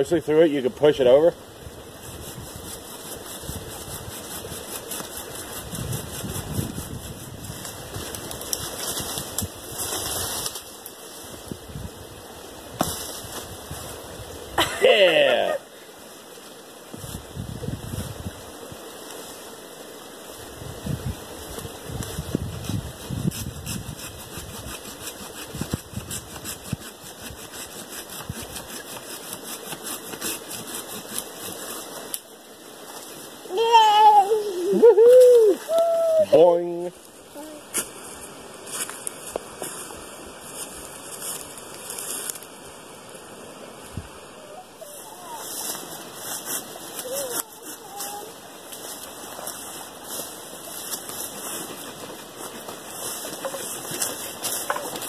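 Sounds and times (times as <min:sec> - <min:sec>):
dry leaves rustling: 0:00.4 - 0:42.8, 0:44.5 - 0:55.0
hand saw cutting wood: 0:02.0 - 0:07.5, 0:22.6 - 0:32.2.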